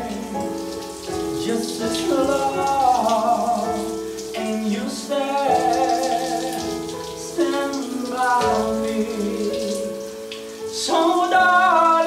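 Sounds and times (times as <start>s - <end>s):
man singing: 0.0s - 10.1s, 10.7s - 12.0s
shower water hissing: 0.0s - 12.0s.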